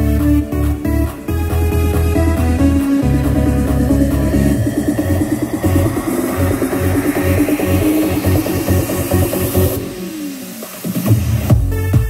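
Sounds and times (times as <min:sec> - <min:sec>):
rising treble sweep: 0:00.0 - 0:11.5
electronic dance music: 0:00.0 - 0:12.0.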